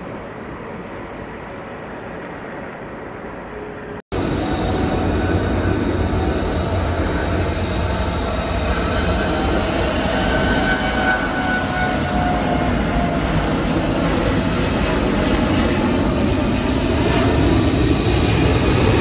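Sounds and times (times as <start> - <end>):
faint engine whine: 0.0 - 19.0
jet engines roaring: 0.0 - 19.0.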